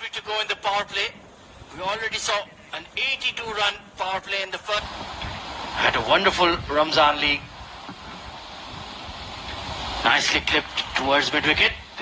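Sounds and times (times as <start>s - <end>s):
soft hiss and crowd murmur: 0.0s - 12.0s.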